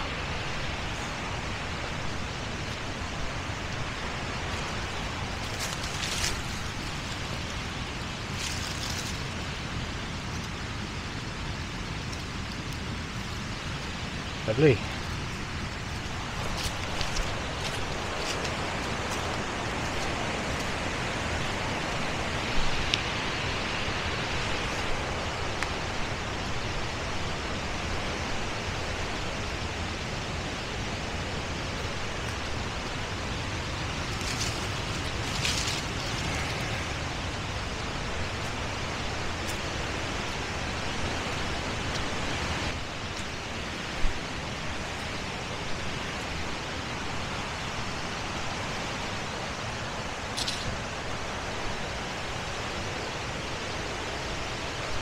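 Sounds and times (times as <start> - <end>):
footsteps on dry leaves: 2.1 - 10.1, 14.8 - 25.0, 31.3 - 45.9.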